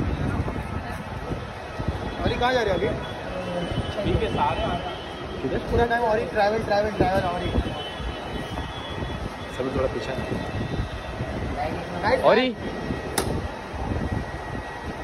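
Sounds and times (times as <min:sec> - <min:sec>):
crowd noise: 0:00.0 - 0:11.6
traffic rumble: 0:00.0 - 0:15.0.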